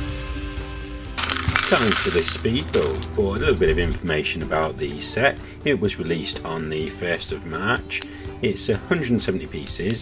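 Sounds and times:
plastic pieces clattering onto table: 0:01.2 - 0:03.2.

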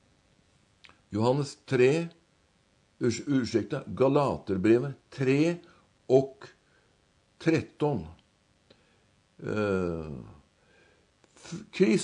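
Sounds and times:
man's drawn-out hesitation sound: 0:01.1 - 0:02.2, 0:03.0 - 0:06.6, 0:07.4 - 0:08.2, 0:09.4 - 0:10.4, 0:11.4 - 0:12.0.

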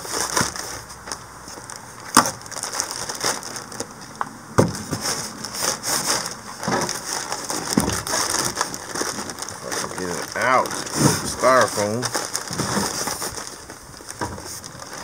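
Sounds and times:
packaging crinkling and crunching: 0:00.0 - 0:15.0.

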